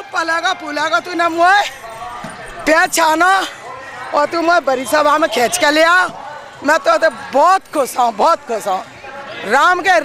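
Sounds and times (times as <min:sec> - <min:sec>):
woman speaking into a microphone: 0:02.6 - 0:08.8.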